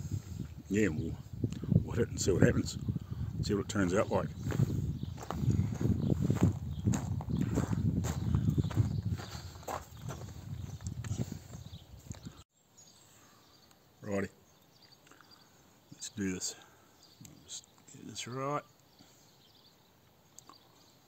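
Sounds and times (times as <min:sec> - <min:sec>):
footsteps crunching on gravel: 0:04.4 - 0:11.4.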